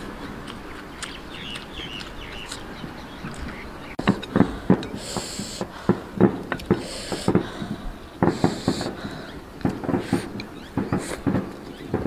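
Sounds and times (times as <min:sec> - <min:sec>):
person chewing with lip smacking: 0:00.3 - 0:05.0.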